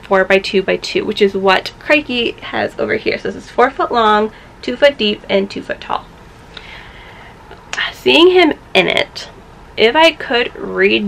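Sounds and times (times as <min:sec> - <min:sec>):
woman talking: 0:00.0 - 0:06.8, 0:07.4 - 0:11.0
faint hiss: 0:06.1 - 0:08.5.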